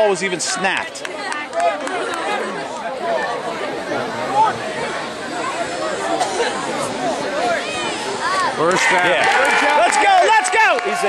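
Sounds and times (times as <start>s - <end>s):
indistinct chatter: 0.0s - 11.0s.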